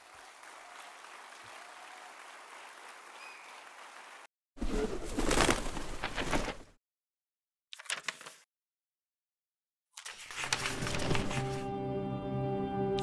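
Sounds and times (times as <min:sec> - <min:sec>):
audience applauding: 0:00.0 - 0:04.3.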